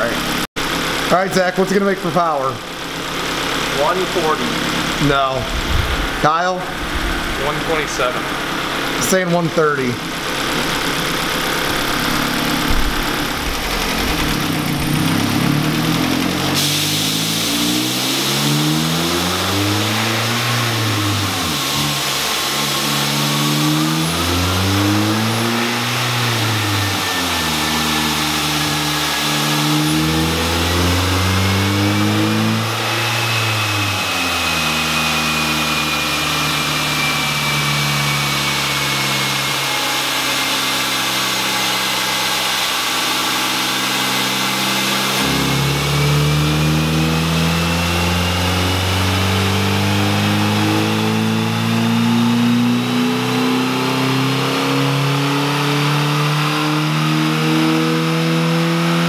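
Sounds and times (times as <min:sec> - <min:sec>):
car engine revving: 0:00.0 - 0:59.0
high whine of rollers and tyres: 0:00.0 - 0:59.0.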